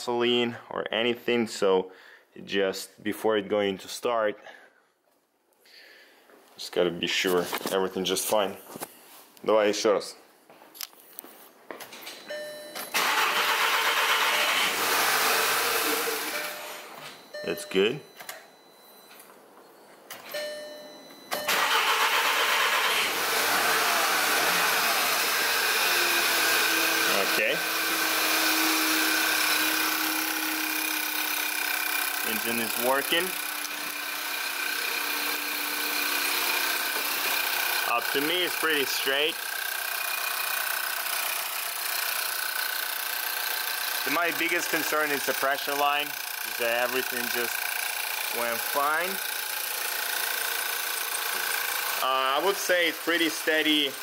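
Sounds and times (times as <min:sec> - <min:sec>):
car engine starting and idling: 0:12.8 - 0:16.9, 0:21.3 - 0:43.1, 0:43.8 - 0:49.2.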